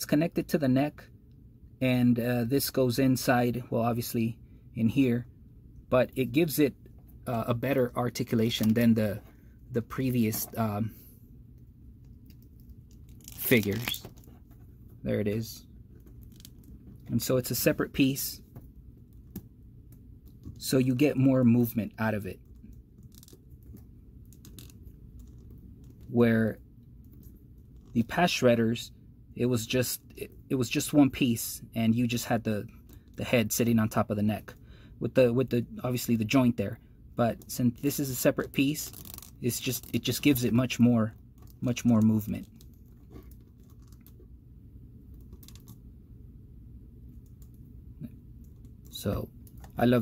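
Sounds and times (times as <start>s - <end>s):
low steady hum: 0.0s - 50.0s.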